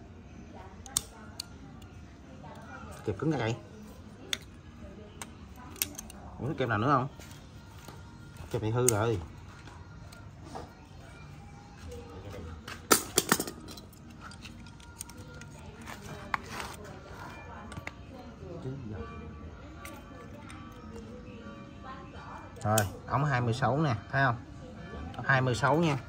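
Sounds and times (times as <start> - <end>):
background music: 0.0 - 26.0
faint background voices: 0.0 - 26.0
metallic clicks and clinks: 12.9 - 15.6.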